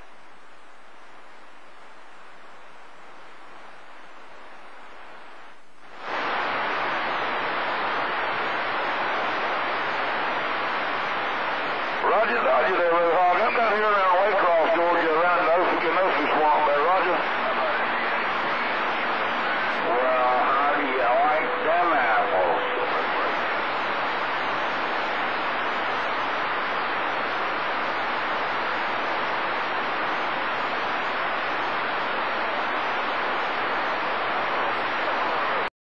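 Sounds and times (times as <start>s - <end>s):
faint steady tone: 0.0s - 35.7s
radio static hiss: 0.0s - 35.7s
garbled radio voices: 11.9s - 25.1s.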